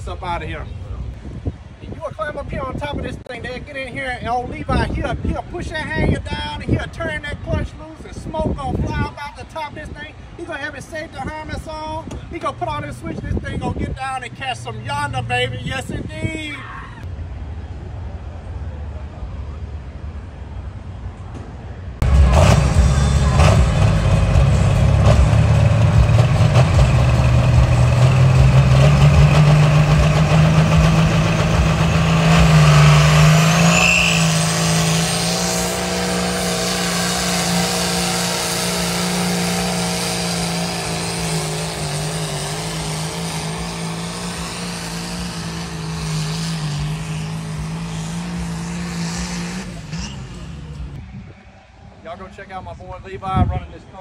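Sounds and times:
tractor diesel engine at full power: 22.0 - 51.0.

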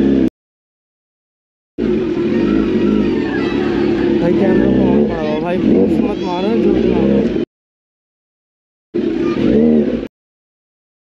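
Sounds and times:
motorcycle engine revving: 0.0 - 0.3, 1.8 - 7.5, 9.0 - 10.1.

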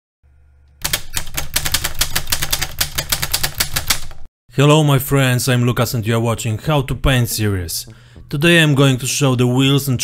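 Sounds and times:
typewriter clacking: 0.8 - 4.3.

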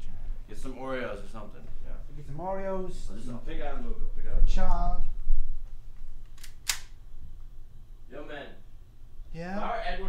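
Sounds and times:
pistol mechanical clicks: 6.3 - 7.0.

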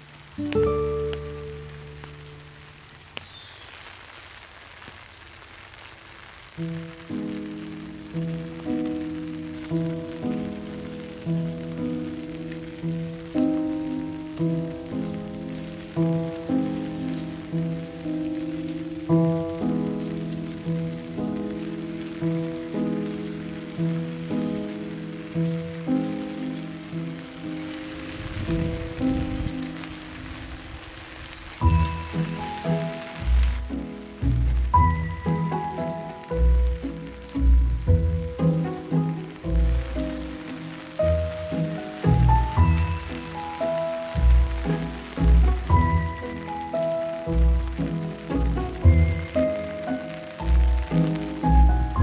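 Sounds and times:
slow instrumental music: 0.0 - 5.0, 6.5 - 52.0
rain falling on leaves: 0.0 - 52.0.

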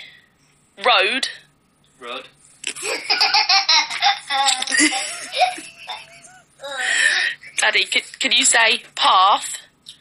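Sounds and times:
toddler laughing: 2.8 - 7.3.

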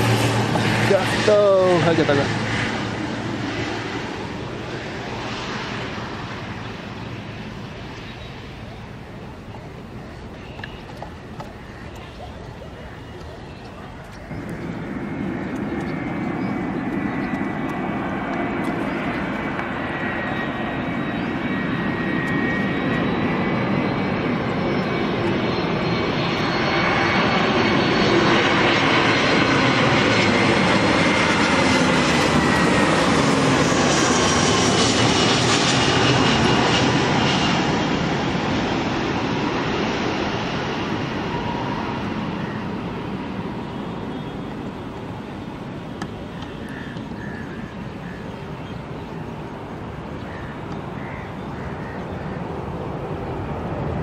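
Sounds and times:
jet airliner flying past: 0.0 - 54.0.

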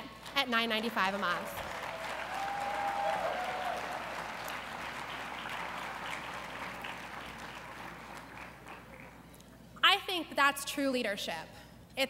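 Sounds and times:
audience applauding: 1.1 - 9.2.

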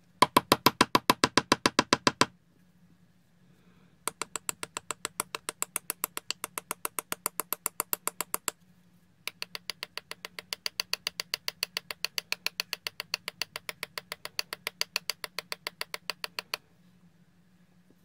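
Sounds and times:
tool tapping plastic pot: 0.2 - 2.3, 4.1 - 8.6, 9.3 - 16.6.

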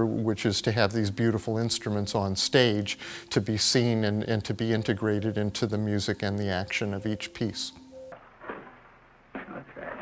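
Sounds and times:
person speaking: 0.6 - 7.9.

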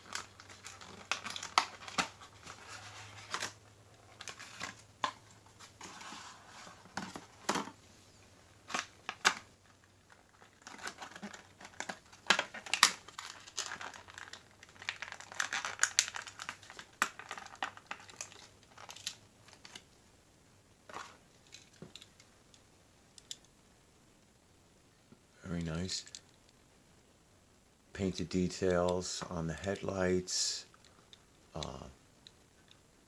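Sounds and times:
plastic packaging crinkling: 0.0 - 5.7, 8.6 - 19.8.

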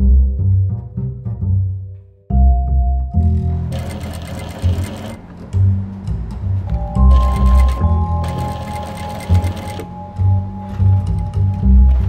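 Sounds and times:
music with plucked bass line: 0.0 - 3.7, 5.3 - 8.3, 10.0 - 12.0
industrial sewing machine stitching: 3.7 - 5.2, 7.1 - 9.9.

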